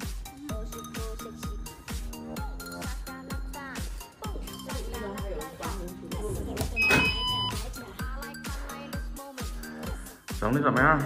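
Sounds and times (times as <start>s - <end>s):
background music with steady beat: 0.0s - 11.0s
card reader chime: 6.8s - 7.6s.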